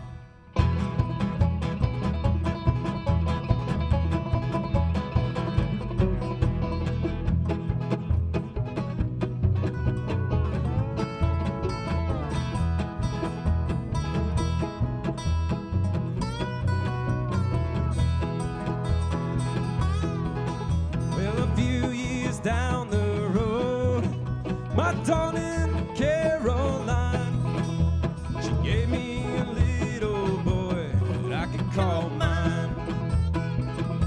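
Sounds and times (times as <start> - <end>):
lap steel gliding notes: 0.0 - 30.0
bluegrass string band playing: 0.0 - 34.0.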